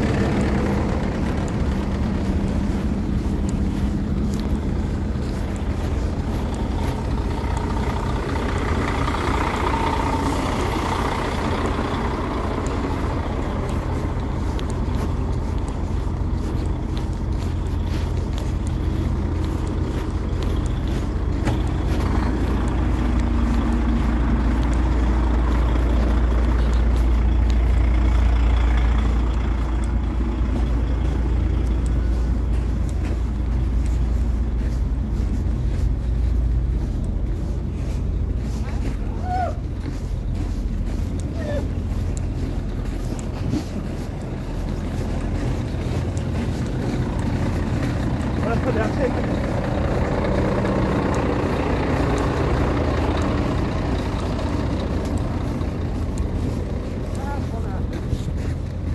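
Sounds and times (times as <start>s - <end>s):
diesel engines idling: 0.0s - 58.9s.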